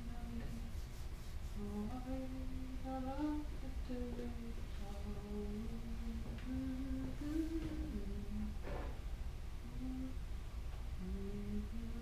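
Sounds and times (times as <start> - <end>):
low steady rumble: 0.0 - 12.0
person humming a slow melody: 1.6 - 8.6, 9.6 - 10.2, 11.0 - 12.0.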